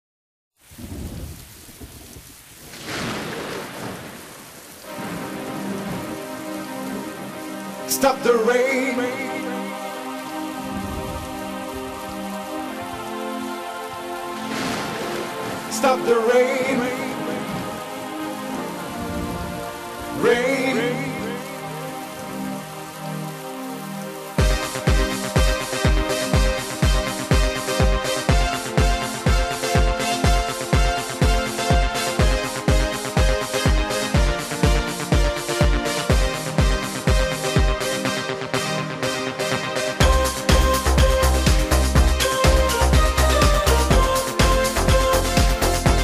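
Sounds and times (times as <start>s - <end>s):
thunder rumble: 0.6s - 7.4s, 10.6s - 12.0s, 14.5s - 15.8s
rain: 0.6s - 46.0s
sustained music chords: 4.9s - 46.0s.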